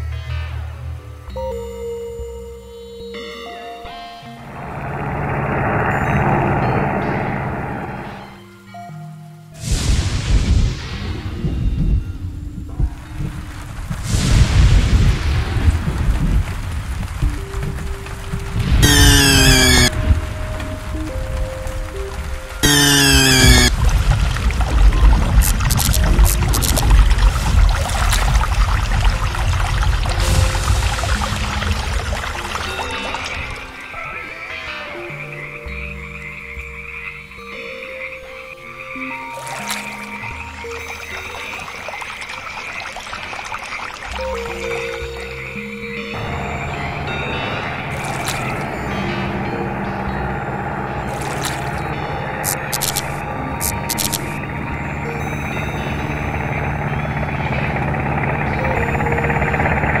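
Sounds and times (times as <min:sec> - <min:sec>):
rain-like noise: 0:04.4 - 0:37.4, 0:38.2 - 0:57.5
cartoon rotor whirring: 0:18.8 - 0:19.9, 0:22.6 - 0:23.7, 0:25.4 - 0:26.9, 0:52.4 - 0:54.3
high trilling chorus: 0:18.8 - 0:19.9, 0:22.6 - 0:23.7
sustained low tones: 0:18.8 - 0:20.4, 0:22.6 - 0:23.8.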